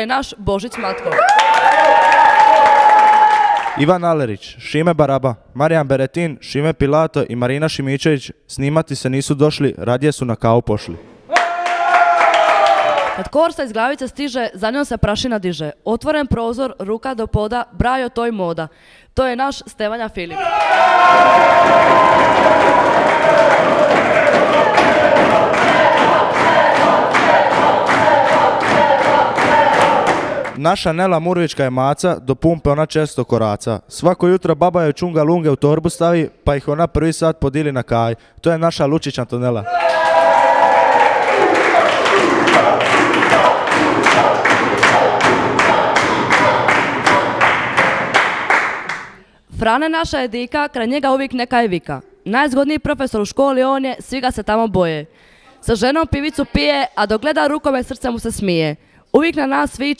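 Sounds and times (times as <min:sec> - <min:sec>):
young people cheering: 0:00.8 - 0:03.8, 0:11.3 - 0:13.3, 0:20.3 - 0:30.6, 0:39.6 - 0:47.5
rhythmic clapping in unison: 0:21.1 - 0:30.6, 0:39.8 - 0:49.2.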